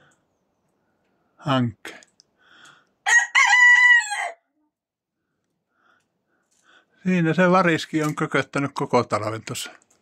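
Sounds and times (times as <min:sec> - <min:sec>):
rooster crowing: 0:03.0 - 0:04.6.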